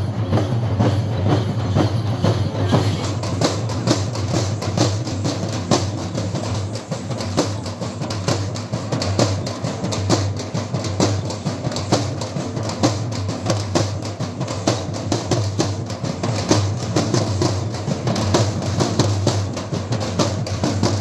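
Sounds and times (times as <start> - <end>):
frame drums beaten with sticks: 0.0 - 21.0.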